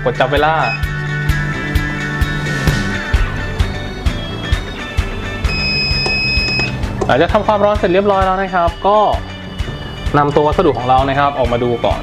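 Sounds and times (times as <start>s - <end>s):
background music: 0.0s - 12.0s
timer alarm high-pitched beep: 0.6s - 0.9s, 4.2s - 6.8s.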